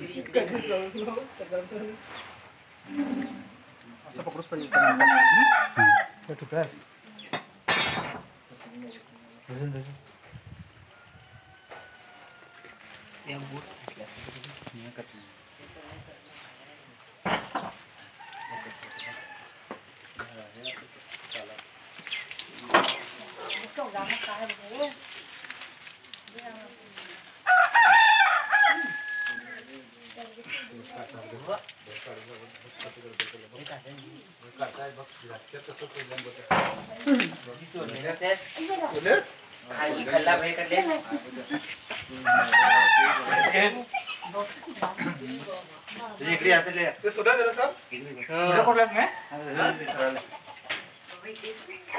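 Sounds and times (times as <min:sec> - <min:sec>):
rooster crowing: 0:04.6 - 0:06.2, 0:10.9 - 0:13.2, 0:18.0 - 0:19.8, 0:27.4 - 0:29.8, 0:42.1 - 0:43.8, 0:48.7 - 0:50.2.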